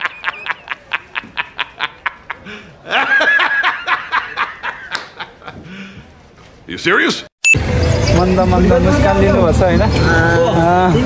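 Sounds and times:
man laughing hard: 0.0s - 5.6s.

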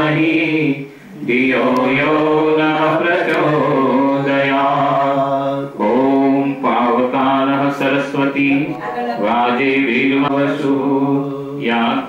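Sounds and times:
person chanting mantras: 0.0s - 12.0s.

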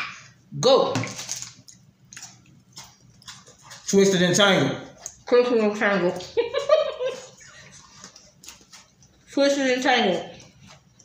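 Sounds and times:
crunchy chewing: 1.5s - 4.0s, 7.6s - 9.3s.

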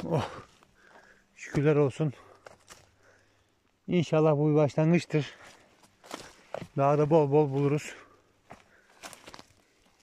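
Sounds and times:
footsteps crunching on pine needles: 0.0s - 3.0s, 5.2s - 10.0s.

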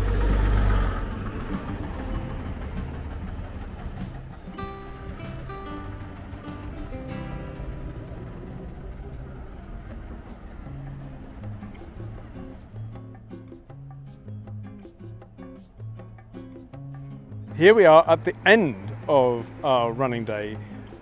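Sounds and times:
traffic noise: 0.0s - 13.8s, 17.6s - 21.0s
bus engine rumbling past: 0.0s - 16.3s, 17.2s - 21.0s
background music: 0.0s - 21.0s.

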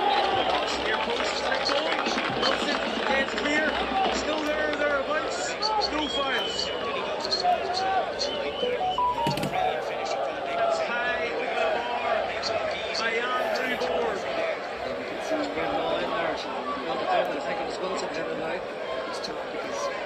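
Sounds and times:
crowd shouting: 0.0s - 2.2s.

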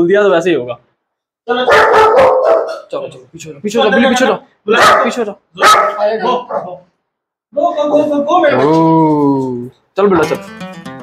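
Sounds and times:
dog barking: 1.6s - 2.9s, 4.7s - 6.9s.

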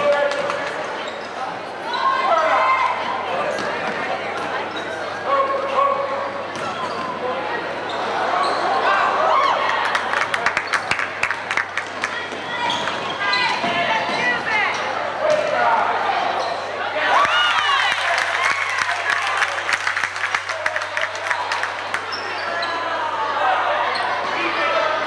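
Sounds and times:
spectators chatter: 0.0s - 25.0s
sneakers squealing on floor: 0.8s - 8.9s, 12.2s - 15.6s, 16.2s - 16.9s, 22.0s - 23.2s, 23.8s - 24.4s.

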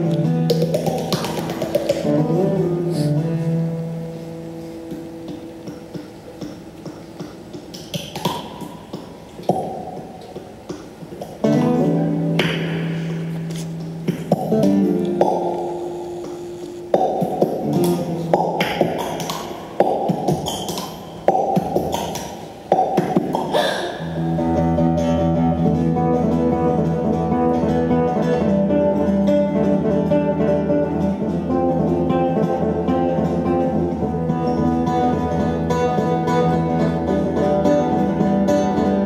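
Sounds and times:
classical guitar chords ringing: 0.0s - 7.6s, 11.4s - 21.7s, 24.0s - 39.0s
mouth percussion clicks and pops: 0.1s - 2.1s, 4.8s - 11.8s, 12.4s - 24.3s.

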